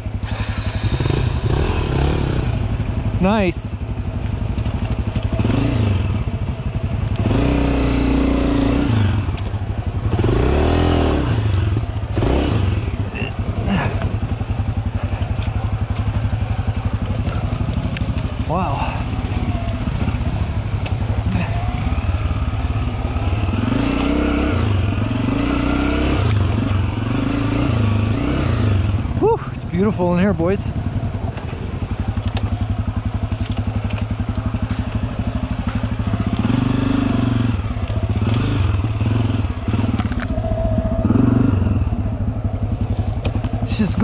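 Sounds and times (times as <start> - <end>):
dirt bike engine revving: 0.0 - 3.7, 5.1 - 6.5, 7.2 - 44.0.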